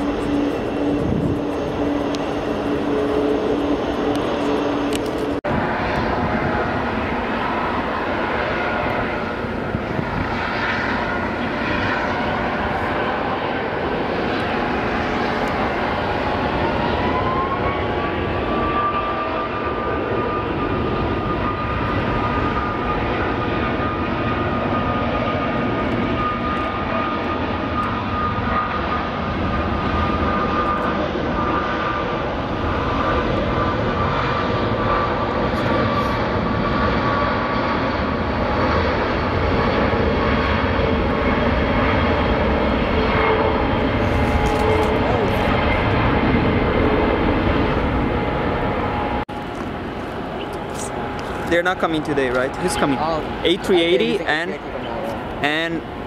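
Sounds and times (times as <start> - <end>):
distant jet engines whining: 0.0 - 56.0
lower whine: 0.0 - 56.0.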